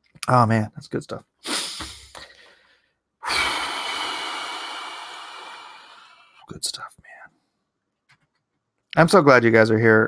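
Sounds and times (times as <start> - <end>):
man exhaling breath: 1.4 - 6.4.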